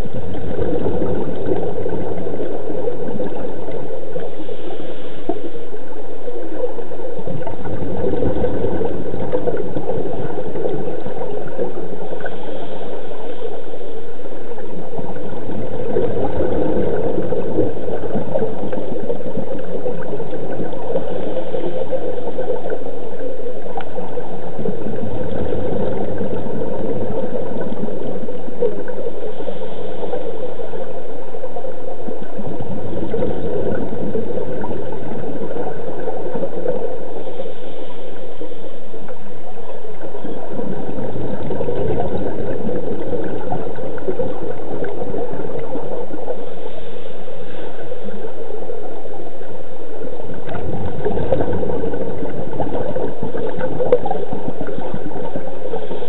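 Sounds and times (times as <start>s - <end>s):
bubbles gurgling: 0.0s - 56.0s.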